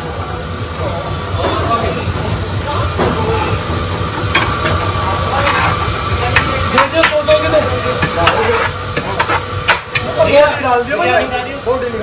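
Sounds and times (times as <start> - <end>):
chatter: 0.0 - 12.0.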